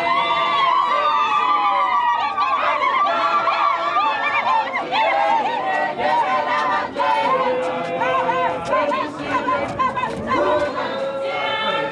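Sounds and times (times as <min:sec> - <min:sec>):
crowd singing and crying out: 0:00.0 - 0:11.9.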